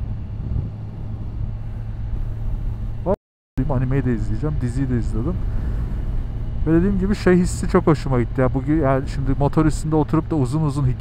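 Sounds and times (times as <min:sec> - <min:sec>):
wind rush: 0:00.0 - 0:03.0, 0:04.5 - 0:07.5.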